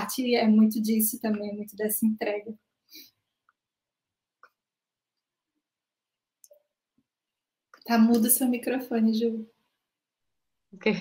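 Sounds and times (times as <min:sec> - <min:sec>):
woman speaking: 0:00.0 - 0:02.6, 0:07.8 - 0:09.5, 0:10.8 - 0:11.0.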